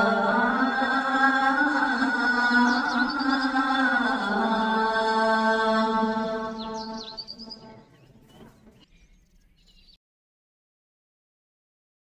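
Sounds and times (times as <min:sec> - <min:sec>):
person singing a long note: 0:00.0 - 0:07.9
bird chirps: 0:01.9 - 0:04.2, 0:06.0 - 0:10.0.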